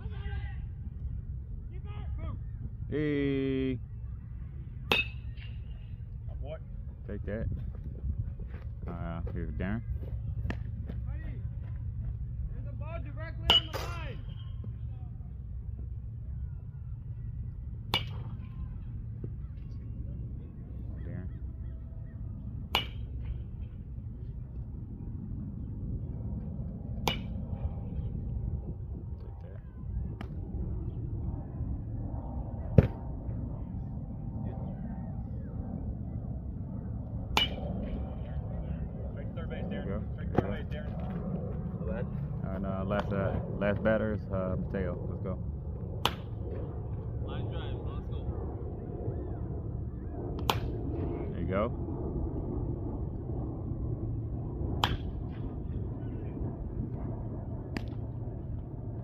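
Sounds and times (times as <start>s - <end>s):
steady low rumble: 0.0s - 59.0s
metal bat pinging balls: 4.9s - 5.7s, 17.9s - 18.4s, 22.7s - 23.3s, 27.0s - 27.4s, 37.4s - 37.7s.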